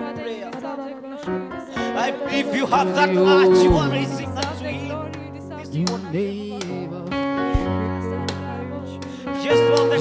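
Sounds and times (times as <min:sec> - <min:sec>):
man singing: 0:00.0 - 0:10.0
sustained instrumental chords: 0:00.9 - 0:10.0
steady bass: 0:03.0 - 0:09.1.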